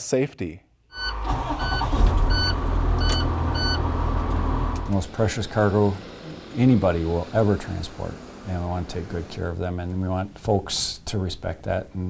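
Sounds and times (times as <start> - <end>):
short electronic beep: 0.9 - 3.8
bus engine running: 1.2 - 9.9.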